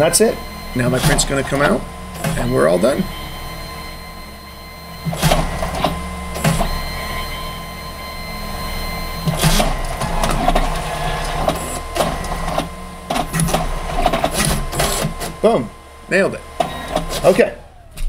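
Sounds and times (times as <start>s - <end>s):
printer motor whine: 0.0s - 18.0s
sharp mechanical clicks: 5.0s - 6.8s, 9.2s - 15.4s.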